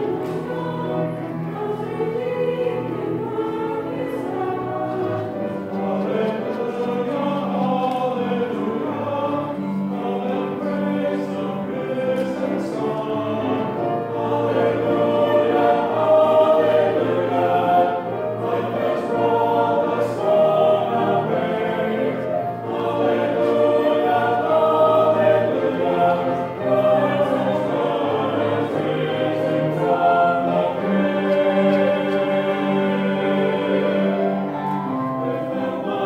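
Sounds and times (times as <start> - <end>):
choir singing: 0.0 - 36.0.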